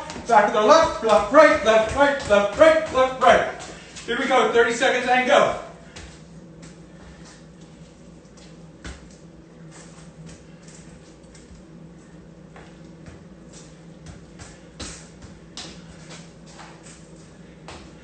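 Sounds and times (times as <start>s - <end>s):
ball taps and shoe scuffs: 0.0s - 4.1s, 8.4s - 9.2s, 12.5s - 17.0s
steady low hum: 0.0s - 18.0s.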